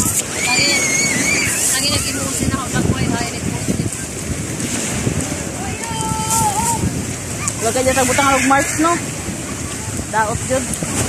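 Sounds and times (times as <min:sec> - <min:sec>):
wind buffeting microphone: 0:00.0 - 0:11.0
faint voices: 0:05.3 - 0:10.8.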